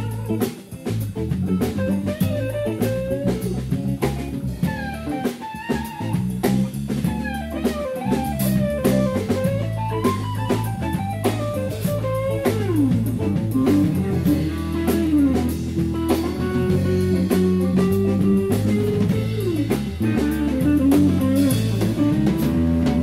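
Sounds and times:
blues band playing: 0.0 - 23.0
lead guitar solo: 0.0 - 23.0.

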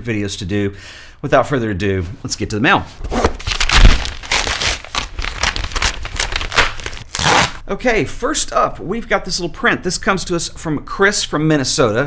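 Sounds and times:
paper packaging tearing and rustling: 3.0 - 7.6.

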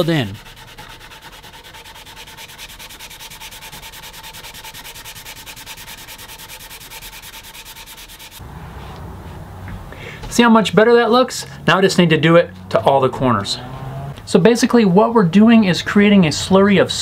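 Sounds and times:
sandpaper rubbing on wood: 0.0 - 8.4.

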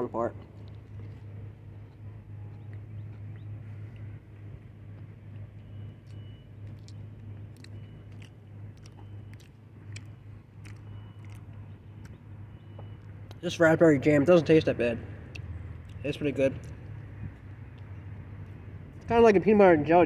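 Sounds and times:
steady low hum: 0.0 - 19.2
person chewing: 5.0 - 12.3
wet mouth clicks: 6.1 - 12.2.

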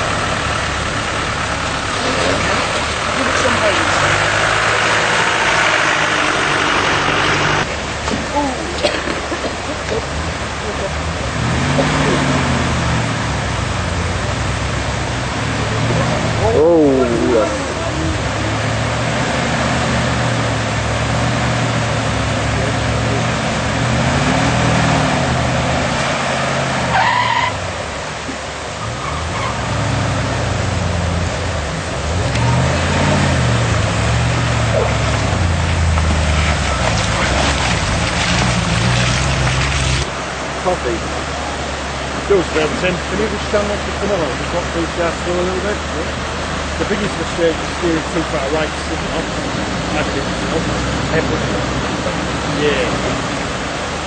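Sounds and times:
rushing water: 0.0 - 54.0
vehicle engine revving: 0.0 - 54.0.

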